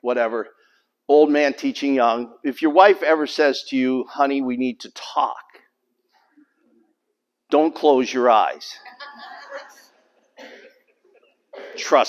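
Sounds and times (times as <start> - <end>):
person coughing: 10.4 - 12.0.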